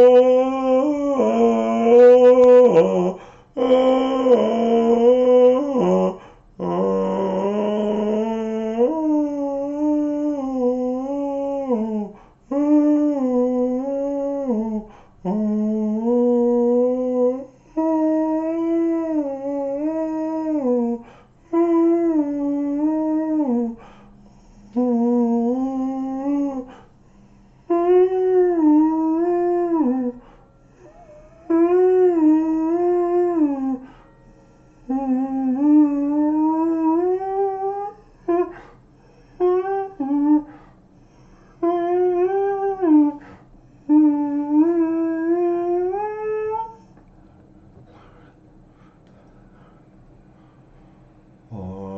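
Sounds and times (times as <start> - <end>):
man singing wordless vowels: 0.0 - 23.9, 24.7 - 26.8, 27.6 - 30.2, 30.8 - 33.9, 34.9 - 38.5, 51.5 - 51.9.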